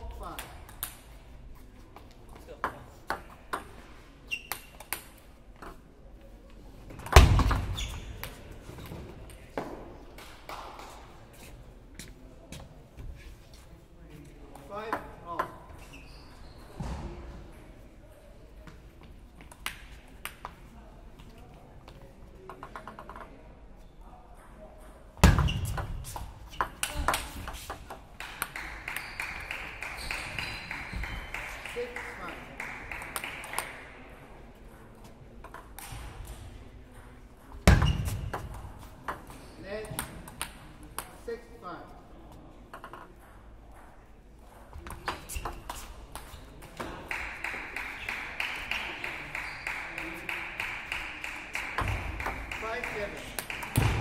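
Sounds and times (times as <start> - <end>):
voices in a hall: 0.0 - 54.0.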